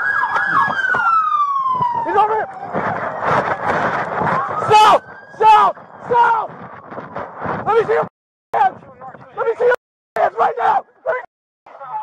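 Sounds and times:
police siren wailing: 0:00.0 - 0:08.1.

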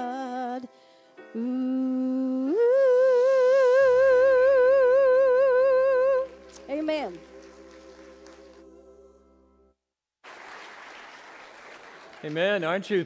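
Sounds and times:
woman singing: 0:00.0 - 0:07.2.

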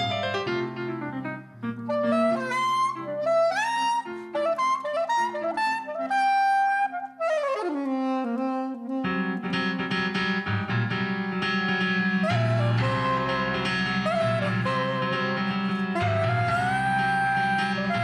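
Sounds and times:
electric keyboard chords: 0:00.0 - 0:06.1, 0:07.8 - 0:18.0
soprano saxophone melody: 0:00.0 - 0:18.0.

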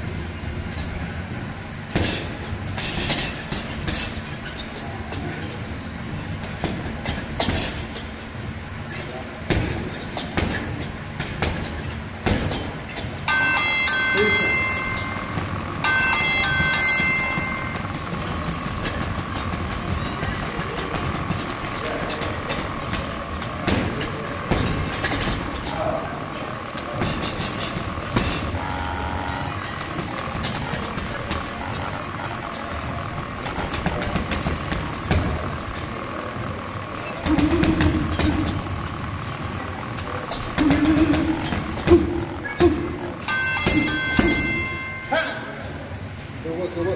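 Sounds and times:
gloved punches on heavy bag: 0:01.9 - 0:04.1, 0:09.4 - 0:12.7
held pitched tone: 0:13.2 - 0:23.2, 0:39.7 - 0:46.0.

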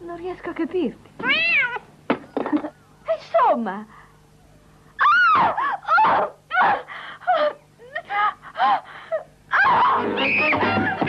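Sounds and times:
woman wailing cries and gasps: 0:05.0 - 0:10.8.

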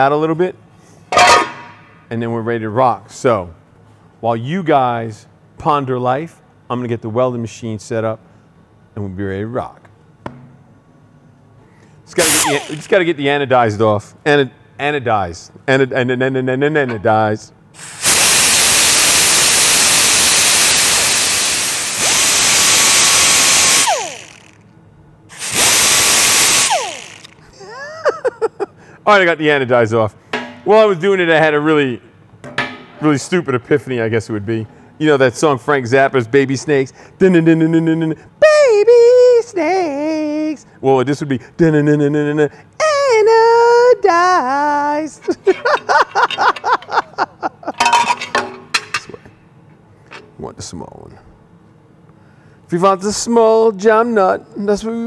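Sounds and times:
die grinder free-running whine: 0:12.2 - 0:13.0, 0:17.8 - 0:24.6, 0:25.3 - 0:27.5
die grinder grinding metal: 0:12.2 - 0:13.0, 0:17.8 - 0:24.6, 0:25.3 - 0:27.4
man laughing: 0:27.4 - 0:28.8, 0:45.2 - 0:47.9.

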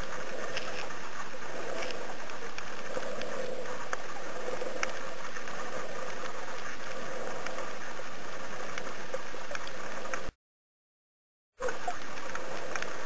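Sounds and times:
sharp underwater clicks: 0:00.0 - 0:07.8, 0:08.5 - 0:10.3, 0:11.6 - 0:13.0
underwater rushing hum: 0:00.0 - 0:10.3.

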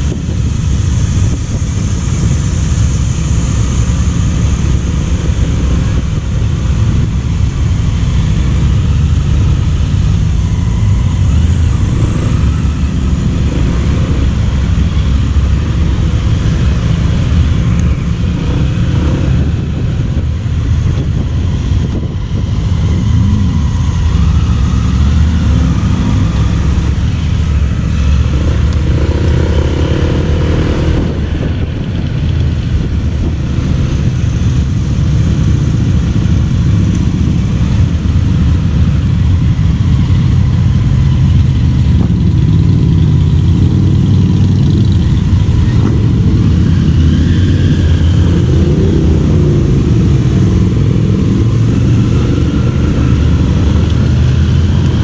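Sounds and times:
motorcycle engines running: 0:00.0 - 0:55.0.

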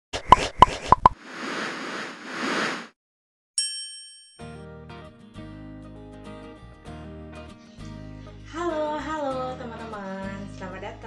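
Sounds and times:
whoosh: 0:00.5 - 0:03.0.

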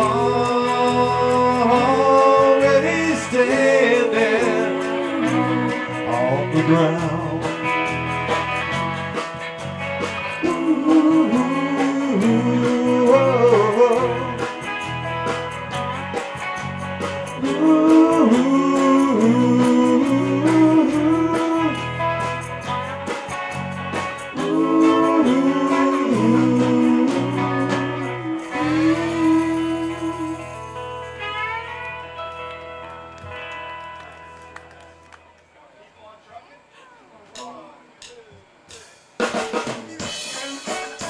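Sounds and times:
bass and drums: 0:00.0 - 0:35.2, 0:37.4 - 0:41.0
melodic electric guitar line: 0:00.0 - 0:35.6, 0:40.0 - 0:41.0.

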